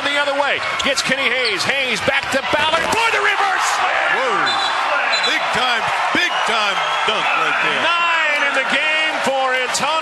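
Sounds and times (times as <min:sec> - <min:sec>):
crowd cheering: 0:00.0 - 0:10.0
announcer's raised voice: 0:02.3 - 0:10.0.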